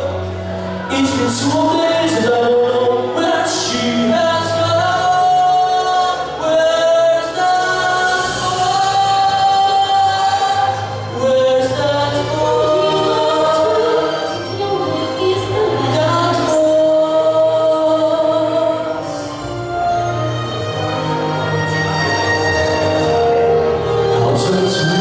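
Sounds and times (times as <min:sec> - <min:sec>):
musical accompaniment: 0:00.0 - 0:25.0
man singing into microphone: 0:00.8 - 0:19.4, 0:24.1 - 0:25.0.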